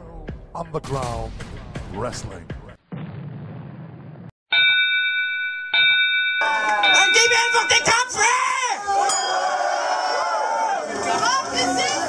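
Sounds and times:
bell ringing: 4.5s - 8.3s, 9.0s - 9.7s.

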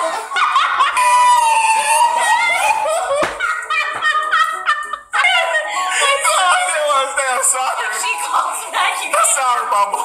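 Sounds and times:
woman laughing and squealing: 0.0s - 6.3s.

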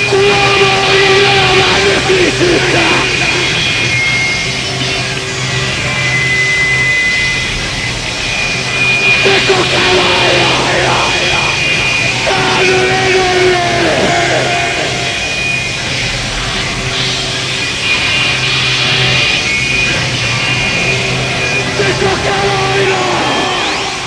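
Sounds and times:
harsh electronic noise music: 0.0s - 24.0s.

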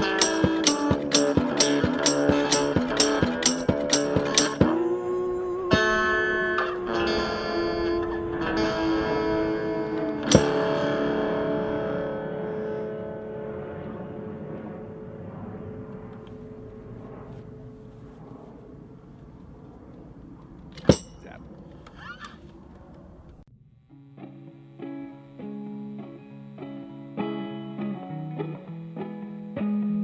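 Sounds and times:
guitar chord ringing out: 0.0s - 15.0s, 23.5s - 30.0s.

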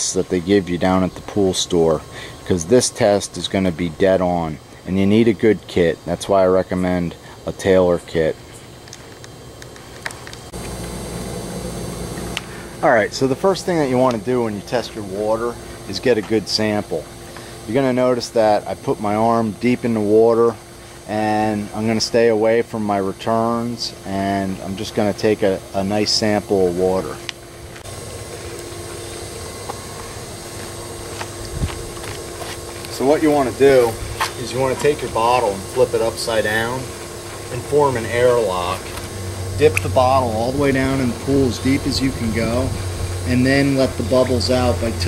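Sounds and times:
low rumbling hum: 0.0s - 45.0s.

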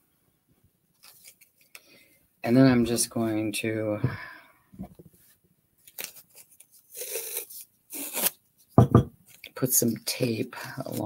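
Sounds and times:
masking tape pulled off roll: 5.9s - 8.4s.

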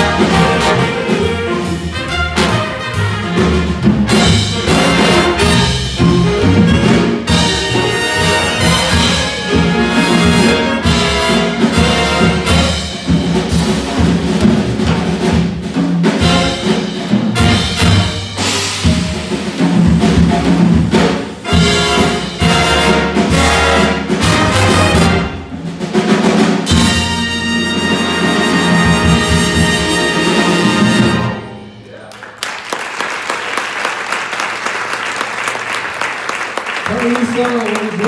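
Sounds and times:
jazz big band playing: 0.0s - 32.0s.

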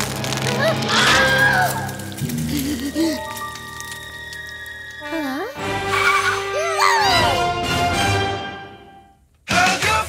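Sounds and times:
cartoon music: 5.0s - 8.0s.

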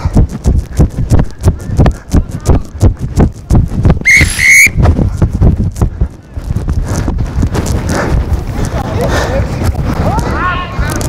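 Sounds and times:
quick low thumps: 0.0s - 10.2s
steady rumbling noise: 0.0s - 11.0s.

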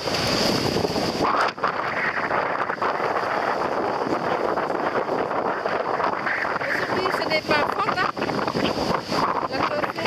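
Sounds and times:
waves breaking on shore: 0.0s - 10.0s
wind on microphone: 0.0s - 10.0s.

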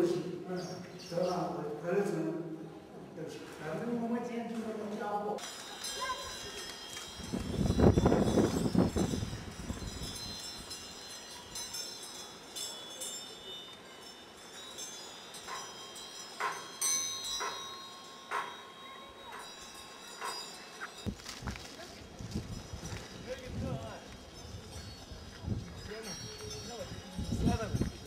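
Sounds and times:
high chime-like ringing tones: 5.4s - 28.0s.

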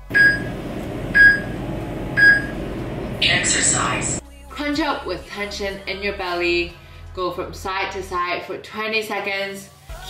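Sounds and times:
steady background noise: 0.0s - 4.2s
short high beeps: 0.2s - 0.5s, 2.2s - 2.5s.

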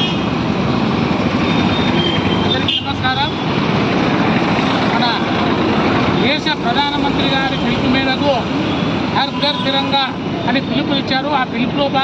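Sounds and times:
road traffic din: 0.0s - 12.0s
people talking: 6.2s - 8.4s, 9.2s - 12.0s.

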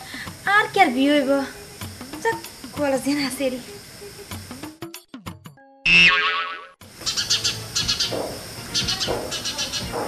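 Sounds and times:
comic boing sound effect: 5.9s - 6.8s.

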